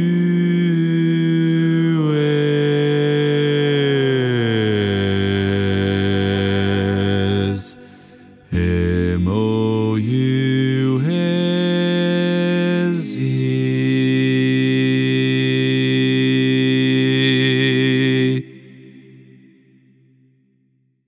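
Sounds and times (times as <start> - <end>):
man singing barbershop harmony: 0.0 - 18.4.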